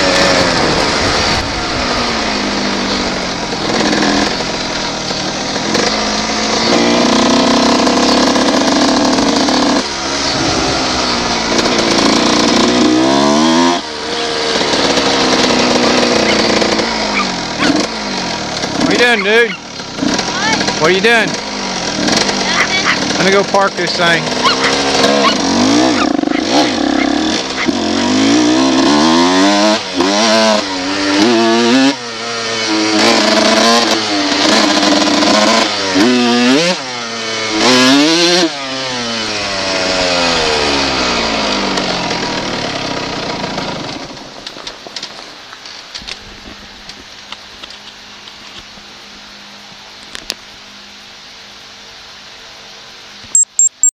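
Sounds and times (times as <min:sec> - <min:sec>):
motorcycle engine revving: 0:00.0 - 0:49.5.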